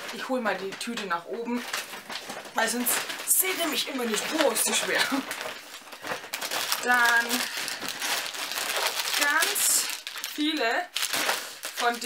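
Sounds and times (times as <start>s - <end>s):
shopping bag rustling: 0.0s - 12.0s.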